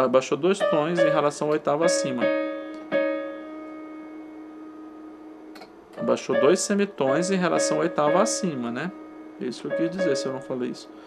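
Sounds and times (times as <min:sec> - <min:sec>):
digital piano notes ringing: 0:00.0 - 0:11.0.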